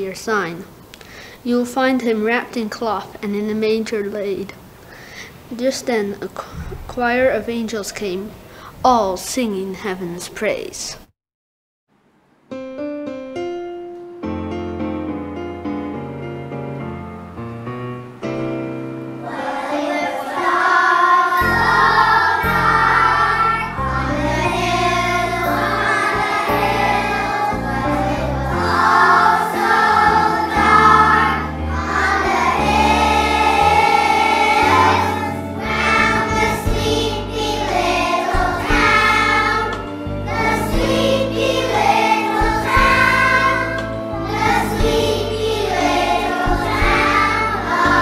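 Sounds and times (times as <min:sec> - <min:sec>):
instrumental accompaniment: 0:12.5 - 0:48.0
children's choir singing: 0:19.2 - 0:48.0.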